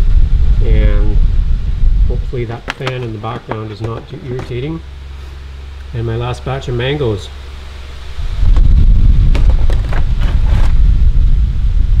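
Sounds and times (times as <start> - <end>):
fan air buffeting microphone: 0.0 - 12.0.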